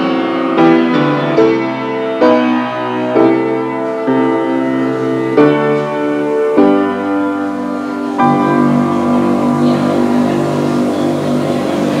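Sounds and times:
sustained keyboard chord: 0.0 - 12.0.

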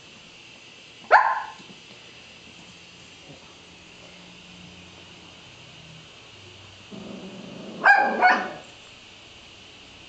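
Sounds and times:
dog barking sharply: 1.1 - 1.6, 7.8 - 8.6
dog growling rumble: 6.9 - 8.6.

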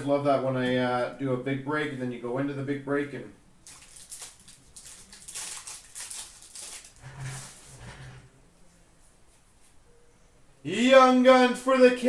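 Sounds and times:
foil wrapper crinkling and tearing: 3.6 - 7.7.

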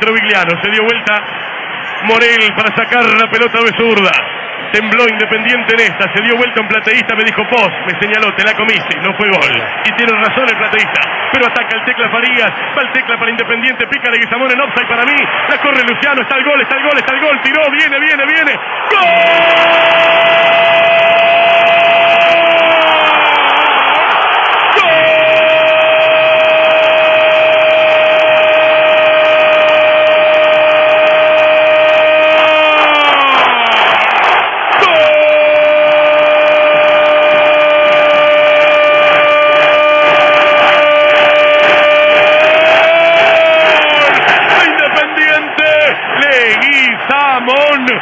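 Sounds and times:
commentator's drawn-out goal cry: 13.8 - 34.0, 34.7 - 48.0.

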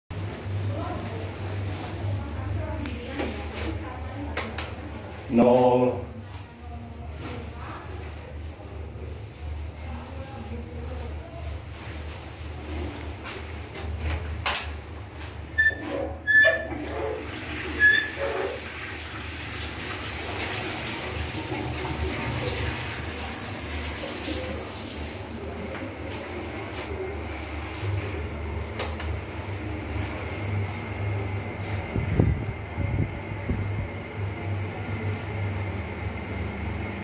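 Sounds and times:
fan humming: 0.1 - 37.0
short squeaks: 15.6 - 17.2, 17.8 - 18.6
toilet flushing: 15.6 - 25.6.

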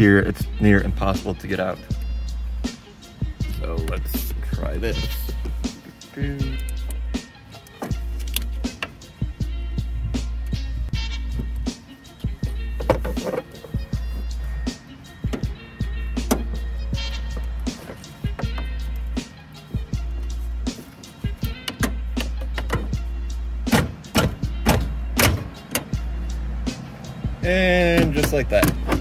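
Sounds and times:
background music with deep bass: 0.0 - 29.0.

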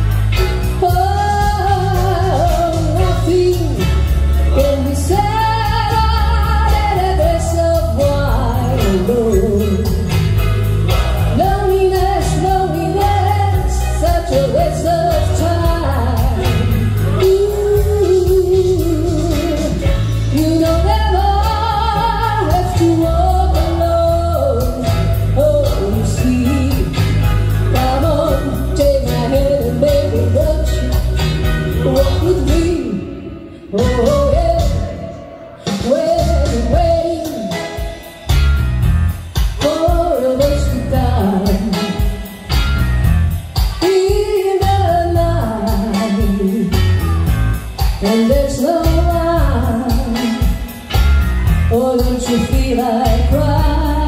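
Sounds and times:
woman singing a slow ballad: 0.0 - 10.6, 11.2 - 38.5, 39.3 - 42.7, 43.6 - 54.0
music accompaniment with steady beat: 0.0 - 54.0.

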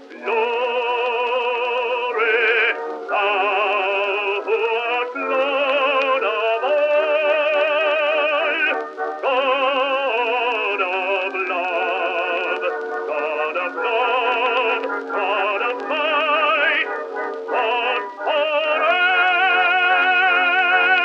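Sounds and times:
operatic hymn singing with vibrato: 0.0 - 21.0.

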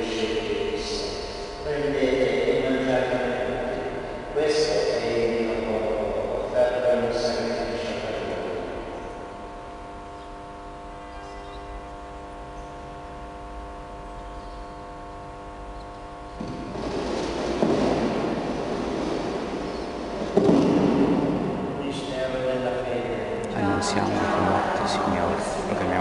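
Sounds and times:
broad noise: 0.0 - 26.0
sustained musical chord: 23.5 - 26.0.

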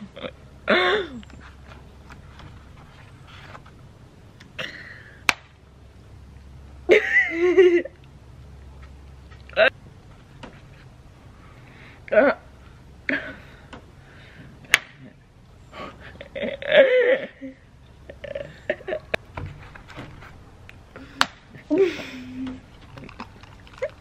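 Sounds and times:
egg cracking on head: 22.8 - 24.0.

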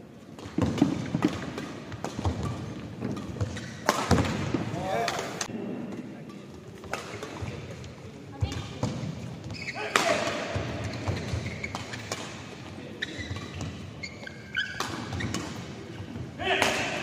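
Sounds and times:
racket hitting shuttlecock: 0.4 - 5.5, 9.8 - 13.9, 14.6 - 15.8, 16.5 - 17.0
shoe squeaks on court: 9.5 - 9.9, 10.8 - 12.2, 12.9 - 15.6.

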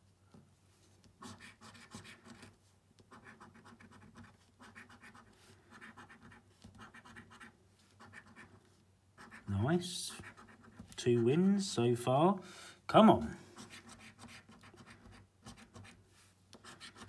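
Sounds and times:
coin scratching scratchcard: 1.2 - 2.4, 3.1 - 8.5, 9.2 - 9.5, 10.1 - 10.8, 13.6 - 16.0, 16.6 - 17.0.

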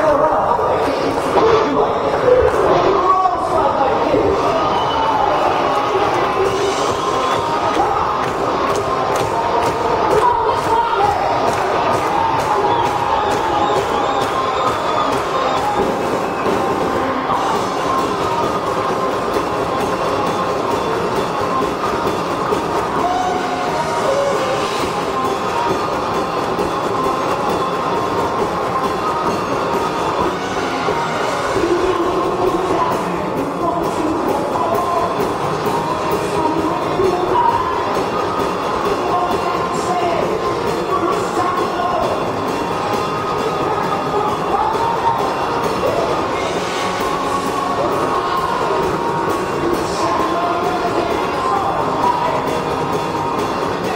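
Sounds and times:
live hard rock band playing: 4.3 - 53.9.

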